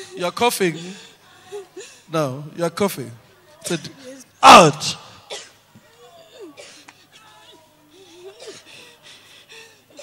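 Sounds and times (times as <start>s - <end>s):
faint voices: 3.1s - 10.0s
woman coughing: 4.8s - 5.6s, 6.2s - 6.9s, 8.2s - 8.8s.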